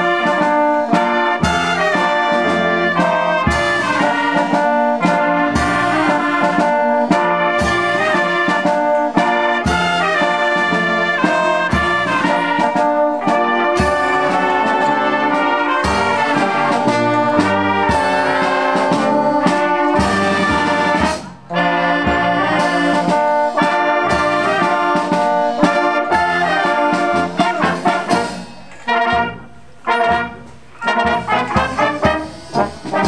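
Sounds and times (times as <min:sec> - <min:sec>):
low beat: 0:00.0 - 0:33.0
wind band playing: 0:00.0 - 0:33.0.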